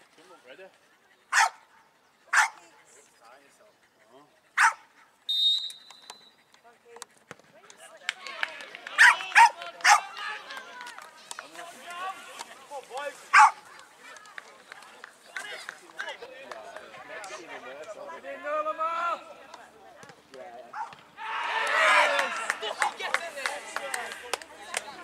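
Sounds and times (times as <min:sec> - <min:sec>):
dog barking: 0:01.3 - 0:01.6, 0:02.3 - 0:02.6, 0:04.6 - 0:04.8, 0:09.0 - 0:10.0, 0:13.3 - 0:13.6
referee's whistle blast: 0:05.3 - 0:06.3
spectators shouting and cheering: 0:21.2 - 0:24.2.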